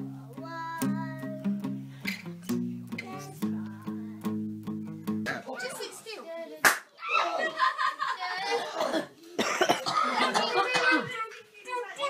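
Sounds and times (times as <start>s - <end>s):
voices in the room: 5.0s - 12.0s
person coughing: 8.6s - 11.1s.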